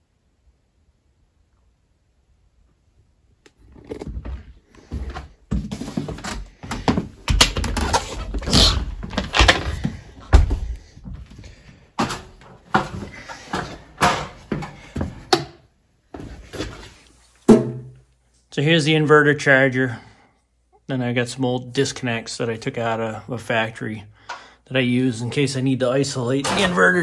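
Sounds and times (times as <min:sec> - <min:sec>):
knocks and thumps on wooden floor: 0:05.0 - 0:11.2.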